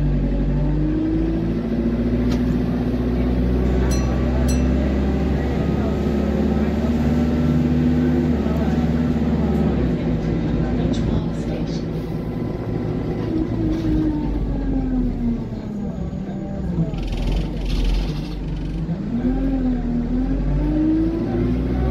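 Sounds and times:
bus engine deep rumble: 0.0s - 21.9s.

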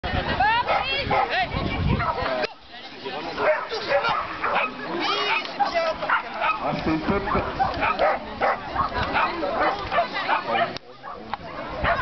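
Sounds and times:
people talking: 0.0s - 12.0s
dog barking and yipping: 0.7s - 1.4s, 3.4s - 12.0s.

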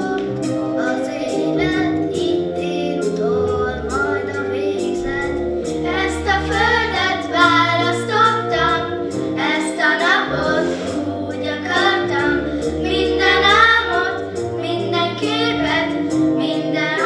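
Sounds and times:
children singing together: 0.0s - 17.0s
low held bass notes: 0.0s - 17.0s.

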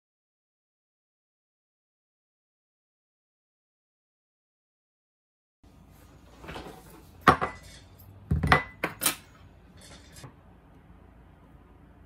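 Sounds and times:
objects knocking and clinking on desk: 7.2s - 10.3s.

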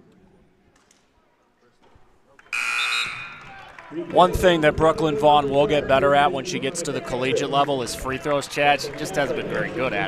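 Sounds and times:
scoreboard horn: 2.5s - 3.7s.

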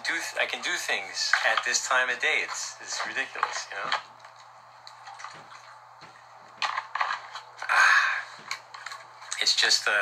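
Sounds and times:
plastic bottle crinkling: 0.5s - 9.6s.

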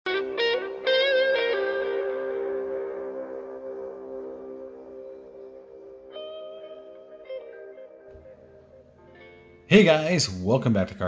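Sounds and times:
sustained guitar chord ringing: 0.1s - 9.7s.

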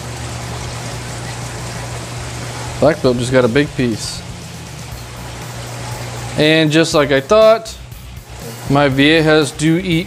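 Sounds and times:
water trickling and running: 0.0s - 10.0s.

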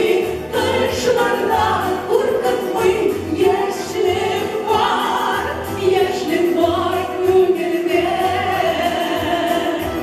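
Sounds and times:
two women singing duet: 0.0s - 10.0s.

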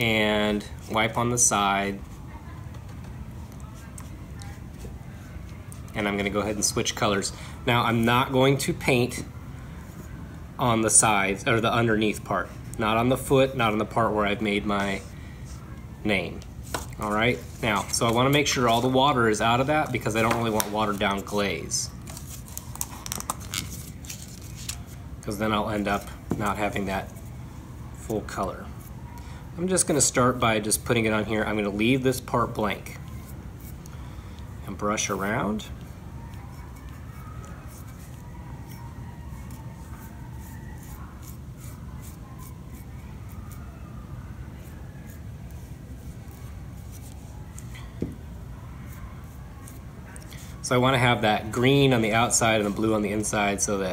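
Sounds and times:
low room hum: 0.0s - 53.9s
brush stroking on clay bowl: 12.2s - 22.6s, 29.7s - 33.8s, 34.7s - 47.7s, 48.6s - 53.5s.

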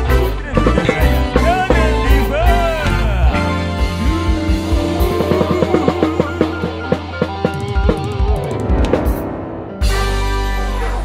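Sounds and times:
drum kit fast hits: 0.0s - 10.3s
instrumental band music: 0.0s - 11.0s.

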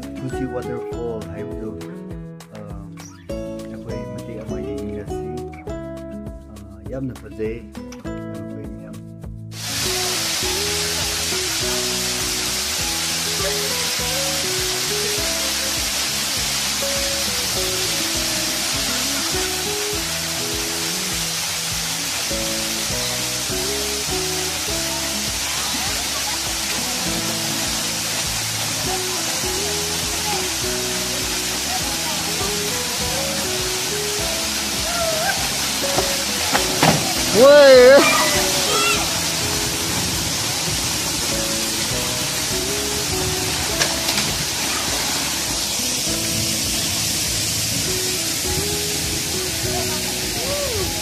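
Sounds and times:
stepping melody music: 0.0s - 51.0s
waterfall rushing: 9.6s - 51.0s.

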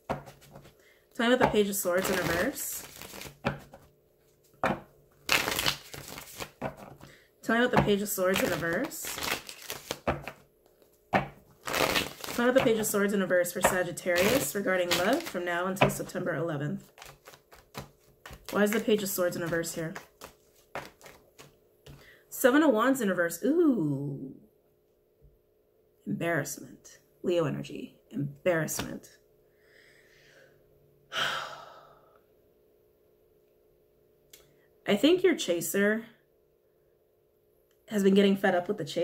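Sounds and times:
cards shuffling rustle: 0.0s - 0.8s, 1.4s - 7.1s, 7.7s - 16.2s, 16.8s - 22.0s.

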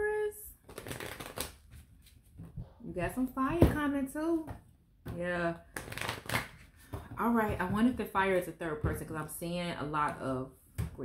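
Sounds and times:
cards being riffle-shuffled: 0.6s - 2.2s, 5.7s - 6.7s.

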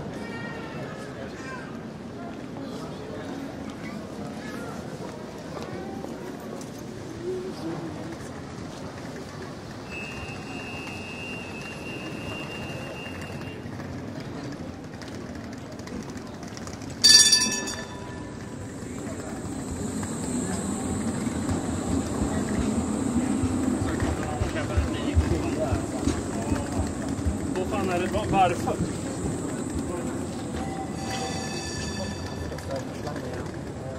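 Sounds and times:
passers-by talking: 0.0s - 33.9s
tram rumbling on tracks: 2.0s - 33.9s
tram high whine: 16.9s - 33.9s
tram bell ding: 17.0s - 24.4s, 28.8s - 32.9s.

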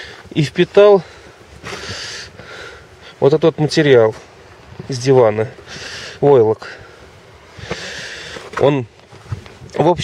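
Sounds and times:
person drawing breath: 1.0s - 3.2s, 5.6s - 6.2s, 6.8s - 8.6s.

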